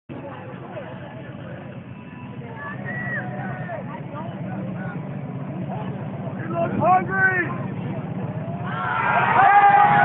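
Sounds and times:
crowd voices and shouts: 0.1s - 10.0s
motorcycle engine running: 0.9s - 8.9s.

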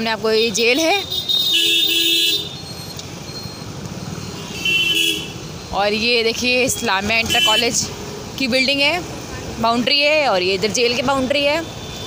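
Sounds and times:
street traffic: 0.0s - 12.0s
vehicle horn honking: 1.1s - 2.6s, 4.4s - 5.4s.

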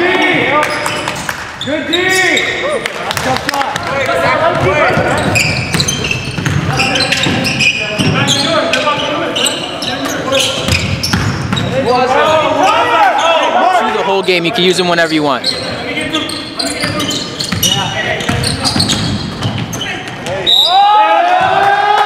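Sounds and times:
players calling out: 0.0s - 22.0s
sneakers squeaking: 0.2s - 3.3s, 4.1s - 21.6s
basketball bouncing: 3.2s - 8.3s, 10.6s - 11.7s, 16.8s - 20.4s.

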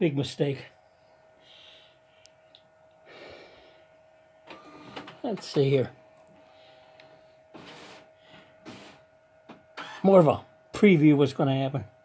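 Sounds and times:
printer humming: 4.4s - 11.0s.

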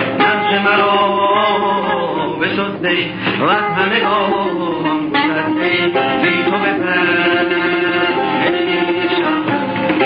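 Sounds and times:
men singing together: 0.1s - 9.3s.

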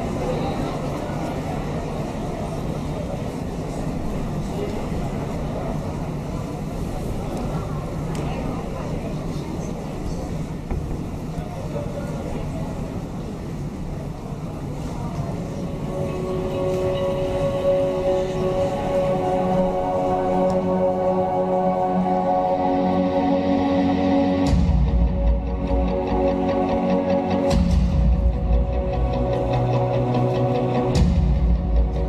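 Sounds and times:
murmur of voices: 0.0s - 32.0s
music with long held notes: 15.4s - 32.0s.

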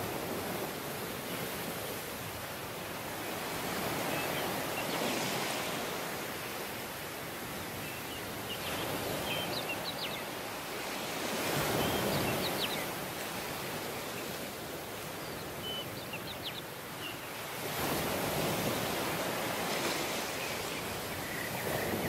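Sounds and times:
small waves washing up beach: 0.0s - 16.0s, 16.6s - 22.0s.

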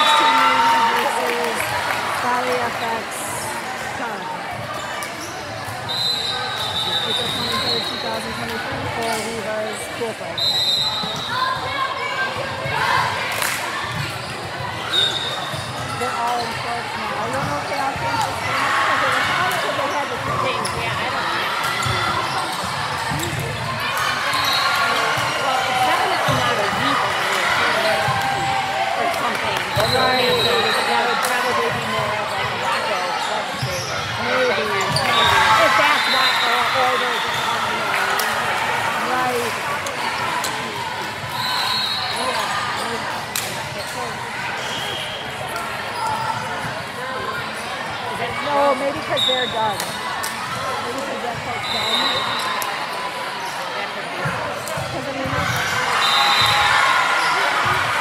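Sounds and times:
voices chattering and calling out: 0.0s - 58.0s.

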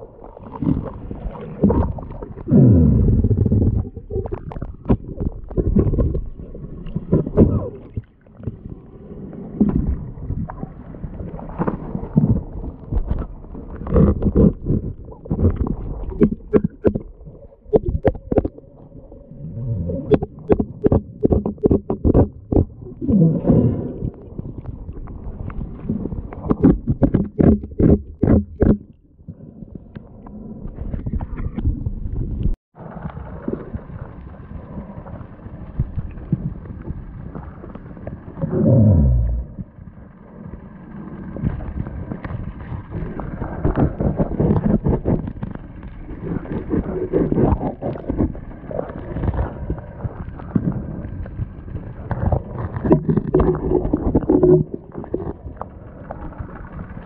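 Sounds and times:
underwater water sloshing: 0.0s - 57.0s.

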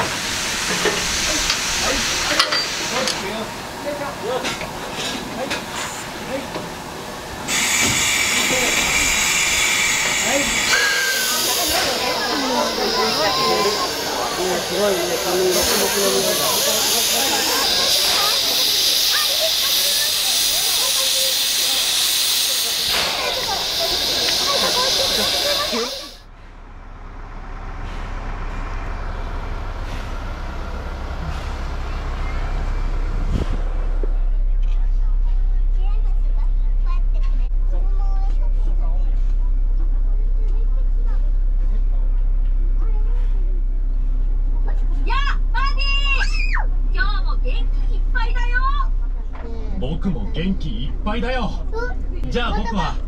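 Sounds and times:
steam locomotive venting steam: 0.0s - 26.3s
bus engine idling: 0.0s - 53.0s.

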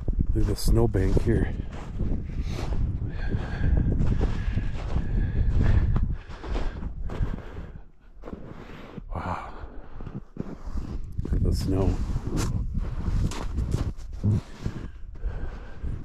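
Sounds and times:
wind buffeting microphone: 0.0s - 8.6s, 9.5s - 16.0s
footsteps crunching in snow: 0.4s - 9.1s, 9.8s - 16.0s.

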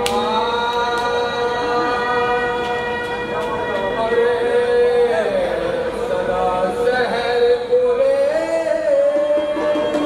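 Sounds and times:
harmonium drone: 0.0s - 7.8s
man singing a long note: 0.0s - 10.0s.

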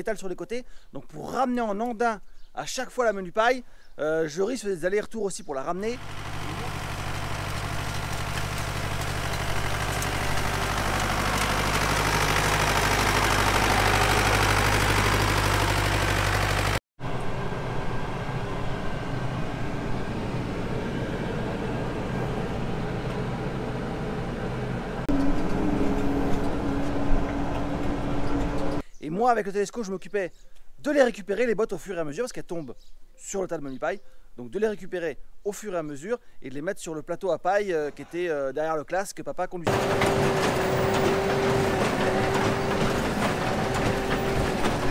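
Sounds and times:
tractor diesel engine running: 5.9s - 28.8s, 39.7s - 44.9s
engines heard from inside cab: 6.0s - 28.8s, 39.7s - 44.9s
higher engine note: 6.0s - 28.8s.

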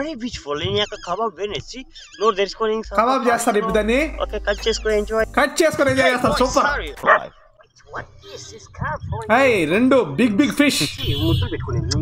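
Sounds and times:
dog barking: 7.0s - 7.5s.

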